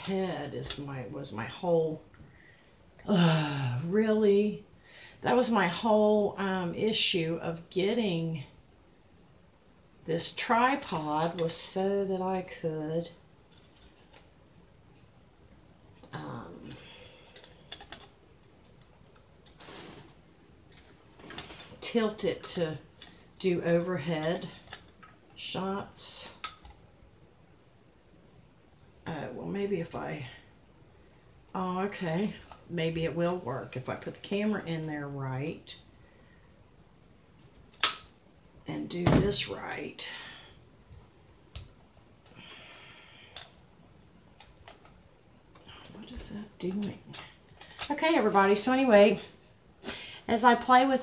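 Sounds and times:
soft hiss: 0.0 - 51.0.

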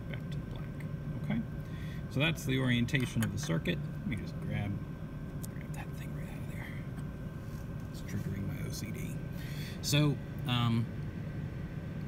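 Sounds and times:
faint high hum: 0.0 - 12.0.

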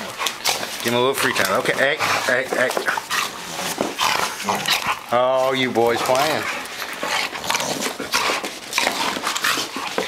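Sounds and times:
puppies snarling and scuffling: 0.0 - 10.0.

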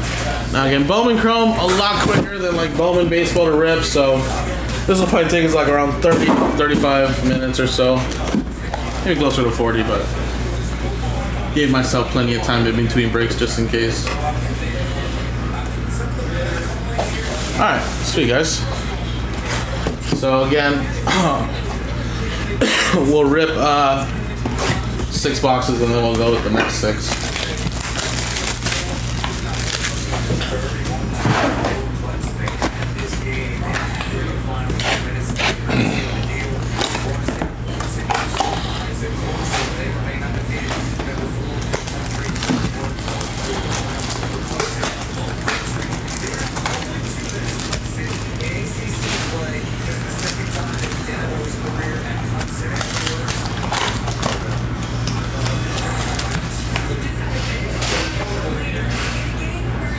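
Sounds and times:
cellophane wrap crinkling and tearing: 24.6 - 30.9, 32.4 - 58.1.

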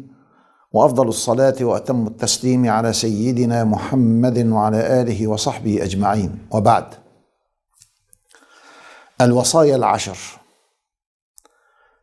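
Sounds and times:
faint breath: 0.1 - 0.7, 8.3 - 9.2, 10.4 - 12.0
man speaking: 0.8 - 7.0, 9.2 - 10.4
mouth click: 11.4 - 11.6.

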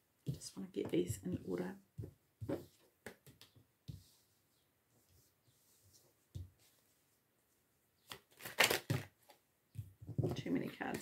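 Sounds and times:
cards rustling: 8.1 - 9.1
cards tapping and sliding: 8.1 - 9.4.

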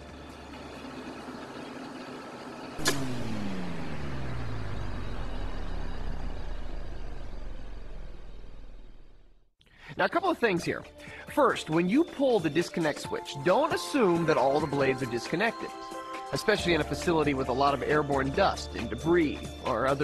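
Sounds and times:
electric motor winding down: 0.0 - 9.4
industrial machinery humming: 0.0 - 9.5.

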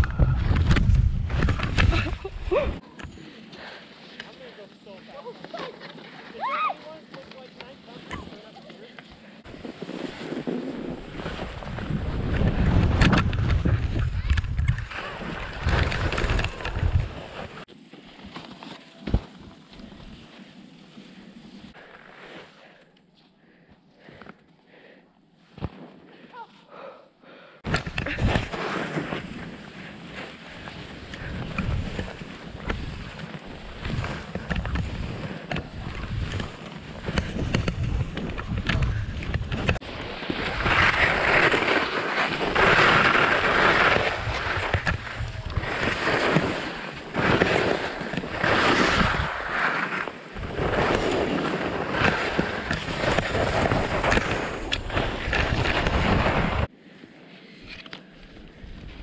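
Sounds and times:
skis hissing through snow: 3.6 - 11.9, 17.1 - 22.8, 28.2 - 37.4, 39.8 - 56.7
wind buffeting microphone: 9.5 - 17.6.

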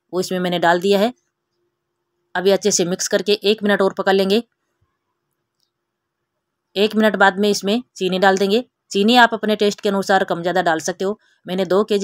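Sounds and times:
woman speaking: 0.1 - 1.3, 2.4 - 4.5, 6.8 - 12.0.

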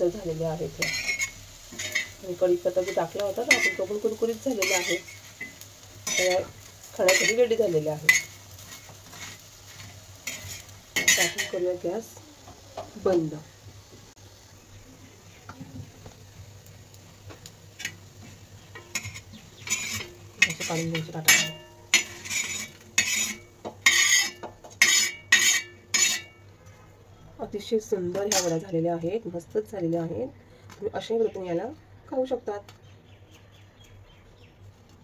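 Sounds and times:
metal spatula scraping pan: 0.8 - 11.6, 18.7 - 26.4, 28.2 - 28.6.

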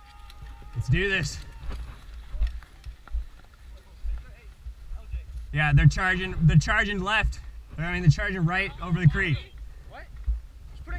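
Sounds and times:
footsteps on dirt trail: 0.0 - 10.6.

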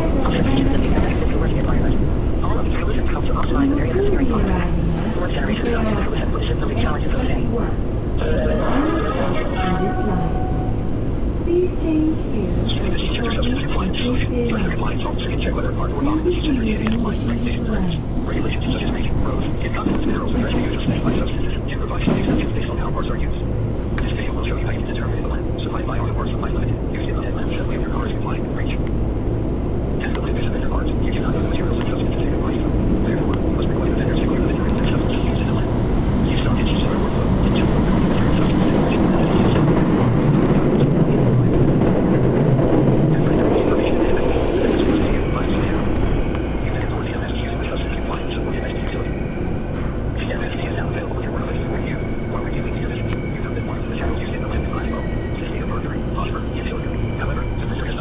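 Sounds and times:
subway train wheels rumbling: 0.0 - 58.0.

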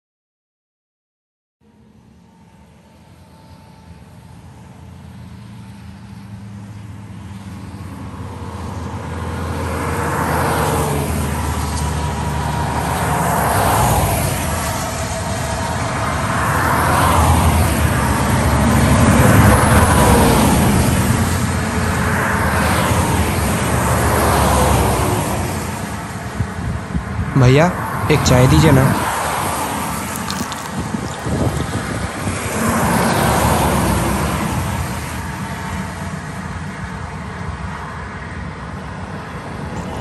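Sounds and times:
traffic rumble: 1.7 - 40.0
vehicles passing: 1.7 - 40.0.

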